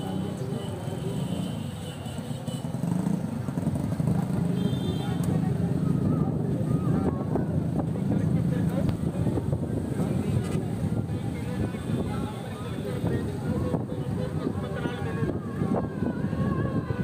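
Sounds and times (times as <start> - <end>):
chatter of voices: 0.0 - 17.0.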